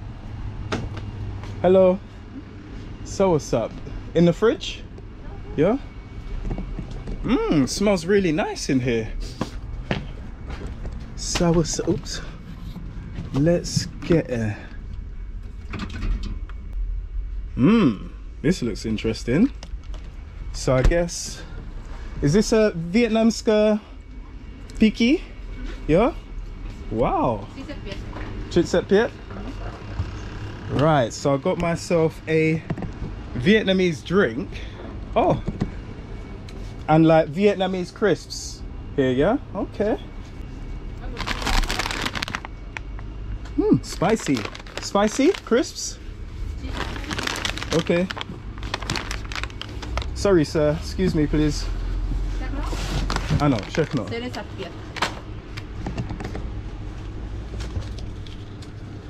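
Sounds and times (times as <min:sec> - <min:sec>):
plastic snack bags crinkling: 0:41.1 - 0:42.8, 0:43.8 - 0:46.0, 0:46.6 - 0:50.4, 0:53.1 - 0:54.1
handheld camera rumble: 0:43.8 - 0:50.3.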